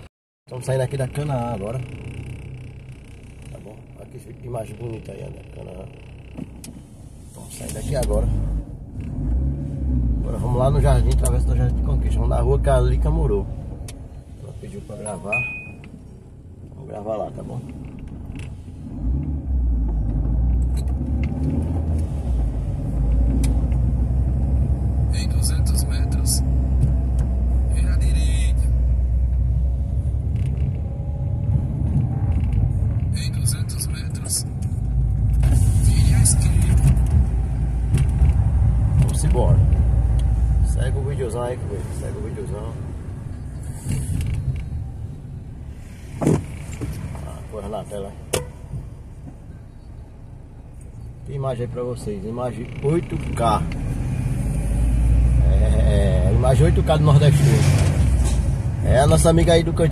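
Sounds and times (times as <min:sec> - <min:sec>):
car engine and road rumble: 0:00.0 - 0:59.9.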